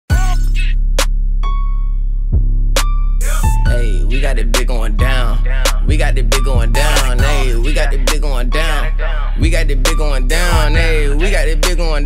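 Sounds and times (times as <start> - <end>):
deep bass: 0.1 - 12.0.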